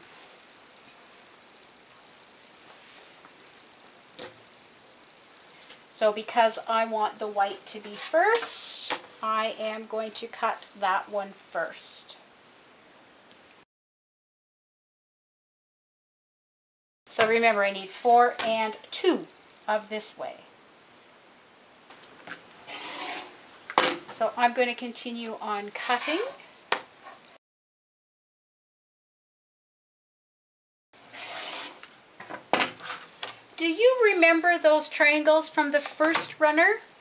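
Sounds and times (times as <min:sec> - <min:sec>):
fabric faint rustle: 0:02.4 - 0:03.8
ruler sliding on cutting mat: 0:07.8 - 0:08.6, 0:22.7 - 0:23.3, 0:25.7 - 0:26.4, 0:31.1 - 0:31.9.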